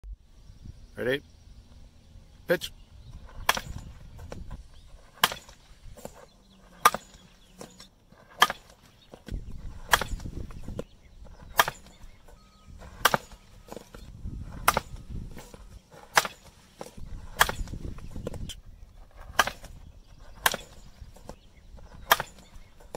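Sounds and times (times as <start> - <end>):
bat cracking softball: 3.2 - 22.9.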